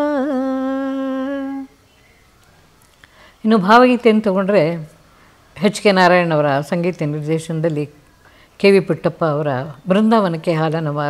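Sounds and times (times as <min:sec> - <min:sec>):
woman singing unaccompanied: 0:00.0 - 0:02.0.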